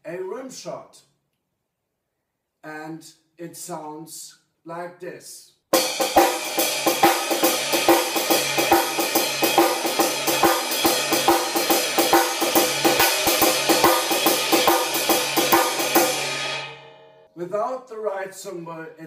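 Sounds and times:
ride cymbal and snare shuffle: 5.7 - 16.8.

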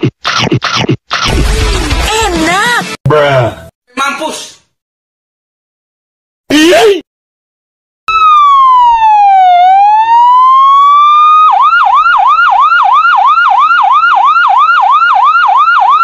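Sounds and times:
ambulance siren wailing and yelping: 8.1 - 16.0.

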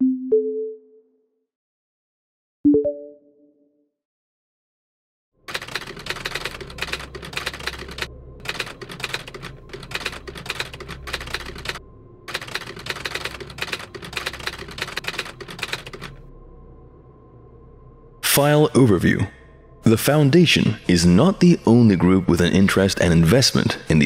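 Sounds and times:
typewriter keys clacking: 5.5 - 16.2.

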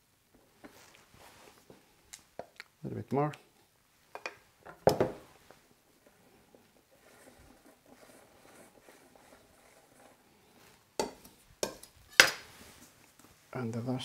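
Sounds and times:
spatula scraping on cake: 6.8 - 12.3.

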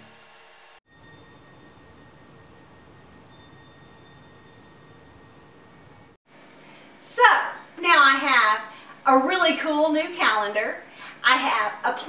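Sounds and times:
thin high-pitched whine: 0.0 - 6.8.

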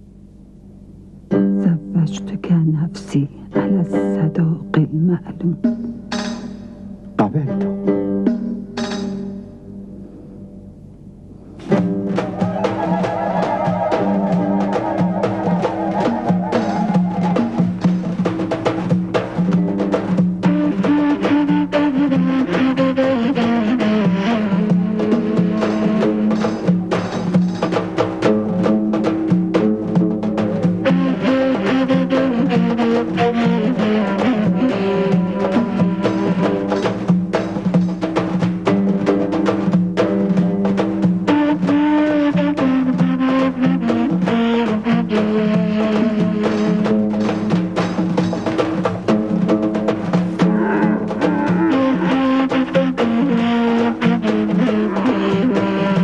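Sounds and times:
sustained melodic instruments: 3.5 - 20.1, 49.2 - 53.5
drum beats: 3.6 - 9.6, 11.6 - 56.0.

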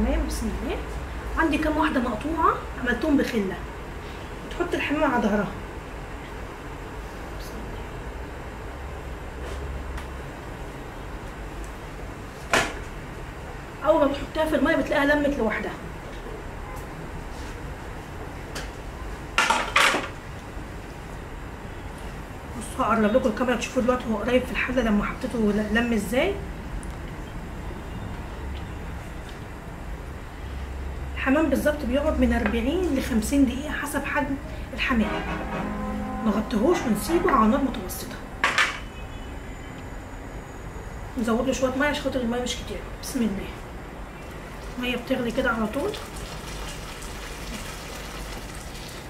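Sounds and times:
pot of broth boiling hiss: 45.8 - 49.0.

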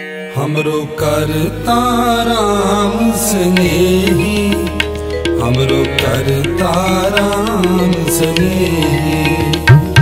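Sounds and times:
band of sustained melodic notes: 1.0 - 10.0.

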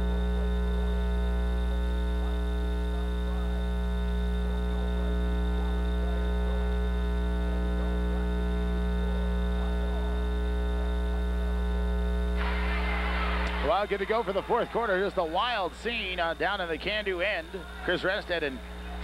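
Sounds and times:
electrical mains hum: 0.0 - 19.0
faint indistinct voices: 0.0 - 19.0.

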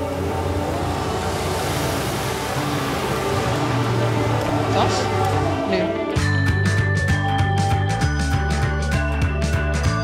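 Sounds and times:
wash of noise: 0.0 - 6.2
sustained chords: 0.0 - 9.7
low bass drone: 0.0 - 10.0.

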